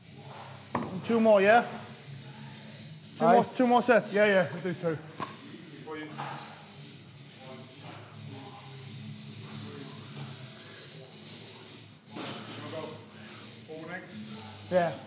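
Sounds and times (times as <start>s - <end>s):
background music with low bass: 0.0s - 15.0s
faint indistinct voices: 5.0s - 15.0s.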